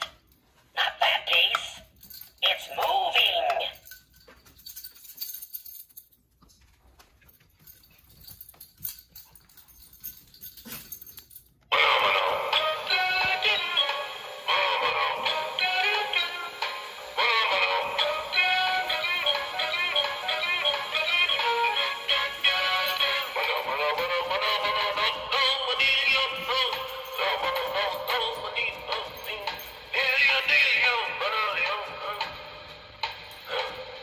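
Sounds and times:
high-pitched singing voice: 11.7s - 32.5s
toy playing song: 11.7s - 32.5s.

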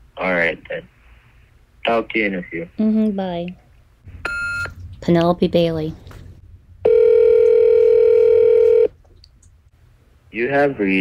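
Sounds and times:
telephone ringback tone: 6.9s - 8.9s.

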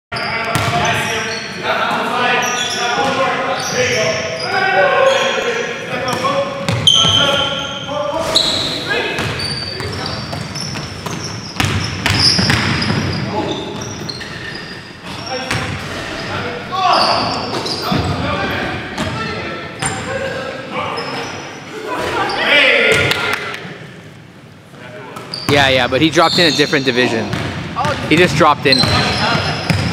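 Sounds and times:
players shouting: 1.7s - 10.1s
basketball bouncing on hardwood floor: 10.3s - 13.0s.

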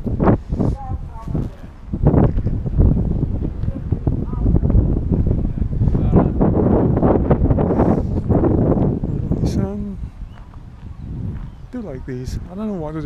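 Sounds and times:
wind buffeting microphone: 0.0s - 13.0s
people talking: 0.6s - 1.8s, 3.6s - 6.4s, 9.4s - 10.0s, 11.8s - 13.0s.

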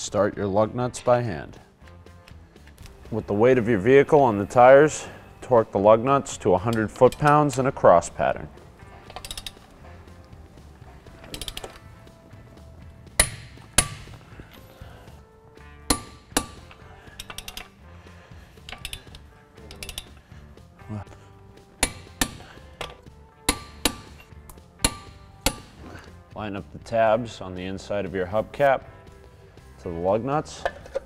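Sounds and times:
torque wrench clicking: 9.1s - 9.6s, 11.2s - 11.8s, 13.2s - 14.2s, 15.9s - 17.8s, 18.6s - 20.3s, 21.8s - 25.8s.

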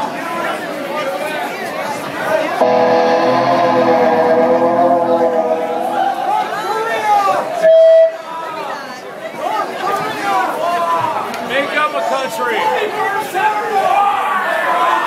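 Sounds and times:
crowd chatter: 0.0s - 15.0s
electric guitar chord: 2.6s - 6.6s
loud steady tone: 2.6s - 6.8s.

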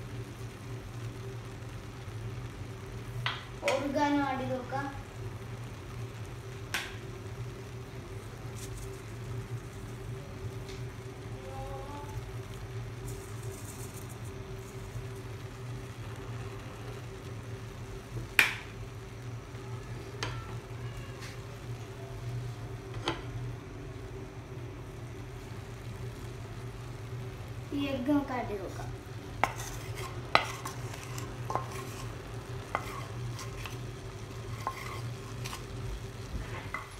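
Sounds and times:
steady low hum: 0.0s - 36.9s.

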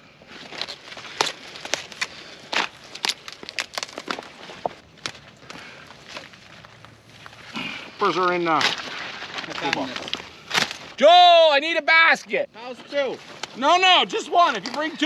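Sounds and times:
leaves rustling and snapping: 0.3s - 11.0s, 12.9s - 15.0s.

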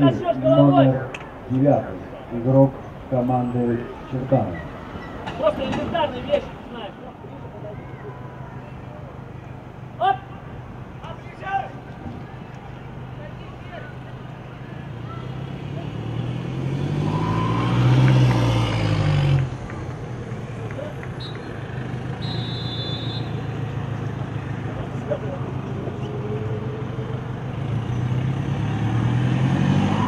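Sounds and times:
vehicle engine passing: 12.0s - 30.0s.

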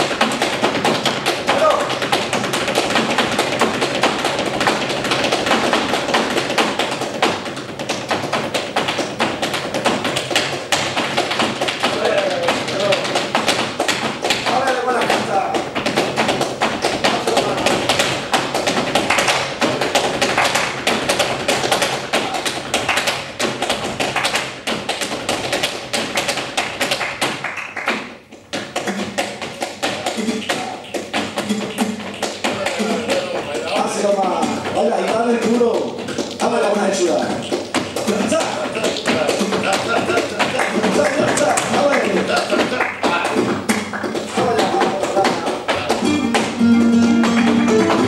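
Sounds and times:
dancer's footwork taps: 0.0s - 48.0s
flamenco guitar: 0.0s - 48.0s
hand-clapping: 0.0s - 48.0s
heel and toe strikes on stage floor: 0.0s - 48.0s
man singing flamenco: 28.8s - 35.7s, 44.3s - 48.0s.

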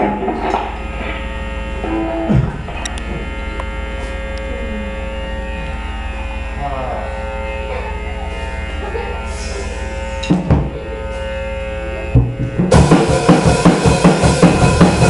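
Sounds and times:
rock band playing: 0.0s - 4.2s, 12.0s - 15.0s
amplifiers humming and buzzing: 0.0s - 15.0s
bass note sliding down: 0.0s - 15.0s
sliding guitar notes: 0.0s - 15.0s.

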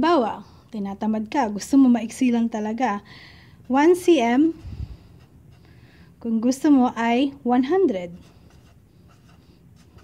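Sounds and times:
marker pen scratching on paper: 3.6s - 5.8s, 8.0s - 10.0s.

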